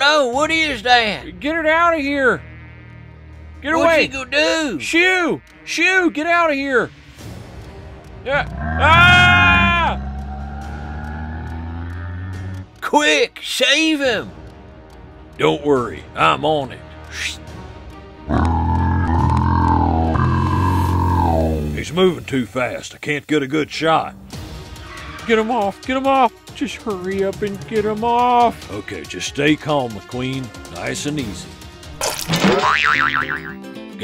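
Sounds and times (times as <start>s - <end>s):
light background music: 0.0s - 10.6s, 12.2s - 34.0s
loud low buzzing drone: 8.2s - 12.8s, 18.3s - 22.0s
wobbling boing: 18.3s - 21.5s, 32.3s - 33.6s.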